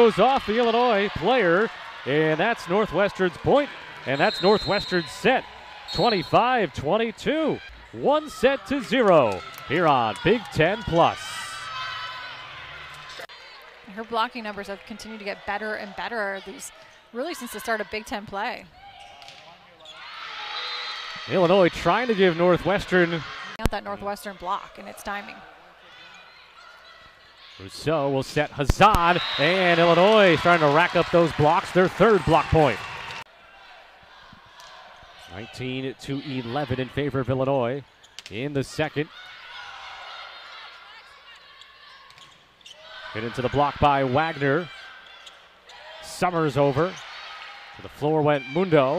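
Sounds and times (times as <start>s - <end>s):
arena crowd noise: 0.0s - 48.9s
players calling: 0.0s - 48.9s
sneakers squeaking on hardwood court: 41.4s - 42.8s.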